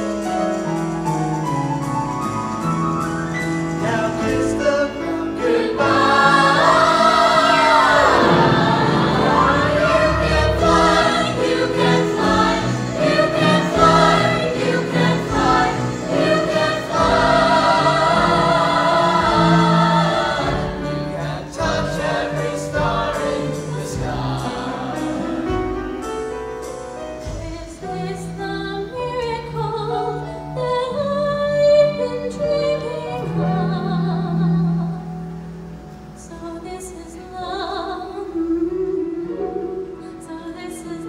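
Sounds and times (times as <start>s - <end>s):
orchestra with strings: 0.0s - 29.9s, 30.6s - 36.8s
choir singing: 3.8s - 25.8s, 27.2s - 41.0s.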